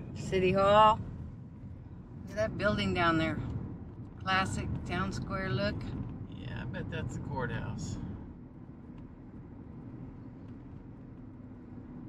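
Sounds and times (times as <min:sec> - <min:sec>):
car driving interior road noise: 0:00.0 - 0:12.0.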